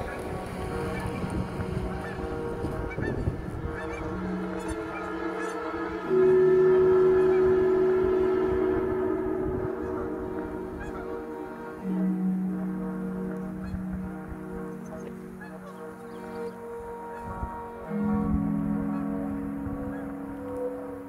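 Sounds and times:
ambient music with held notes: 0.0 - 21.0
geese honking: 0.0 - 21.0.

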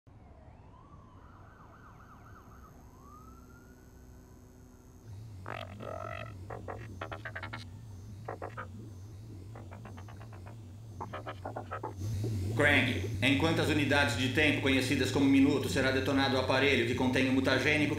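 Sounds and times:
faint siren wailing: 0.1 - 17.9
low electronic hum: 2.4 - 17.9
electronic bleeps and chirps: 5.1 - 17.9.

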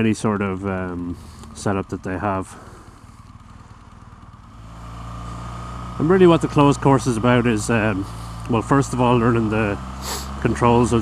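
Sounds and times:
motorcycle engine running: 0.0 - 11.0.

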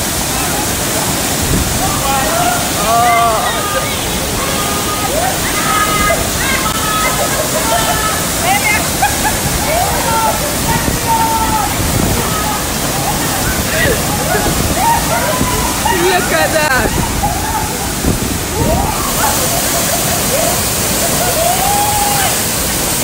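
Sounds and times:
people talking: 0.0 - 22.4
waterfall rushing: 0.0 - 23.0.

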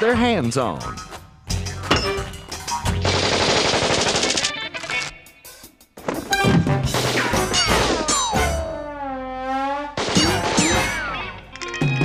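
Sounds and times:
cartoon machine-gun rattle: 3.1 - 5.0.

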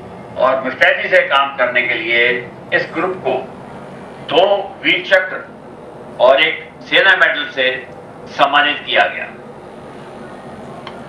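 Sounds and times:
man speaking: 0.4 - 3.5, 4.3 - 5.5, 6.2 - 9.4.

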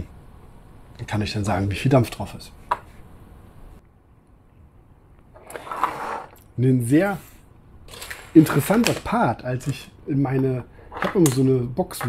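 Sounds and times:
plastic parts rubbing: 7.9 - 12.0
plastic parts clicking together: 10.9 - 12.0.

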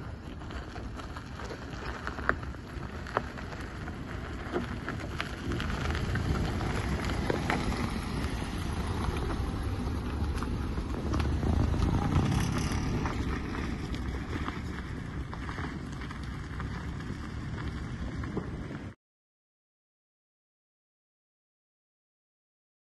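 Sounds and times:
car driving on unpaved road: 0.0 - 19.0.

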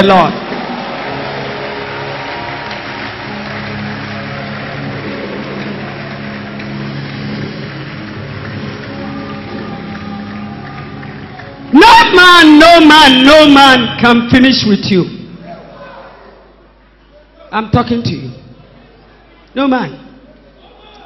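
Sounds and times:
congregation clapping: 0.0 - 14.0.

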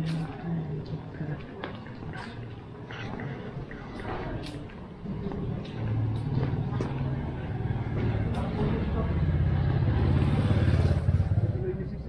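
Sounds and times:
motor scooter engine passing by: 5.0 - 11.9.

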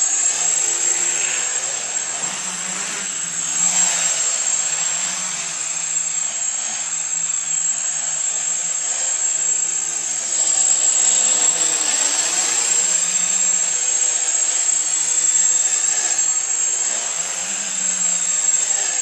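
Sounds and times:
drone buzzing: 0.0 - 19.0.

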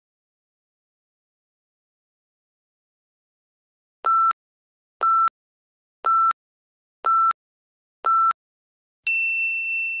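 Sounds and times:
timer alarm ding: 9.1 - 10.0.

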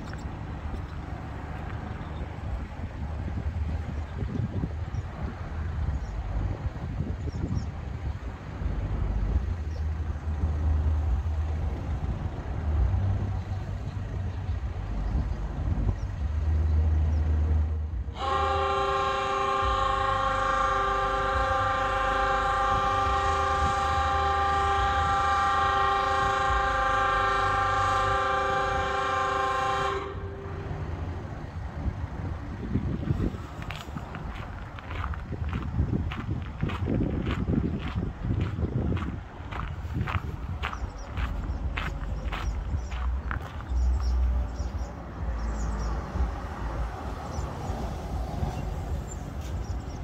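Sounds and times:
foghorn blast: 18.1 - 31.1
low rumble: 30.0 - 50.0.

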